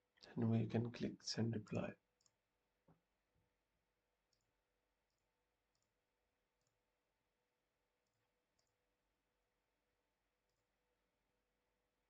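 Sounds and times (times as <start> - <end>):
computer mouse clicks: 4.3 - 6.0, 6.6 - 6.8, 8.0 - 8.8.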